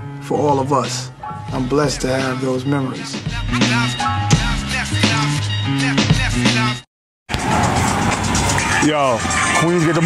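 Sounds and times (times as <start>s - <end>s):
man's voice: 0.2s - 6.8s, 8.7s - 10.0s
street traffic noise: 7.3s - 10.0s.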